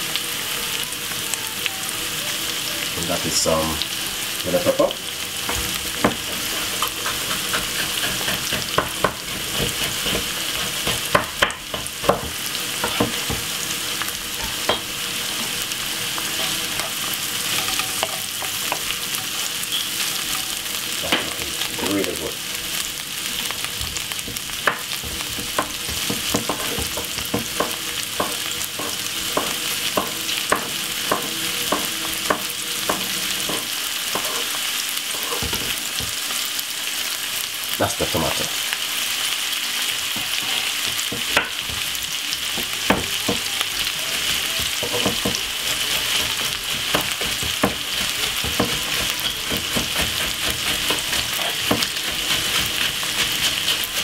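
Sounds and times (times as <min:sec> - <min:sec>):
vegetables sizzling in oil: 0:00.0 - 0:54.0.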